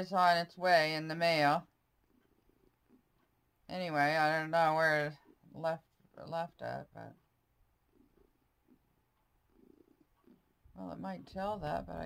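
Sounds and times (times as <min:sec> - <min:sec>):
cat purring: 0:01.4 - 0:12.0.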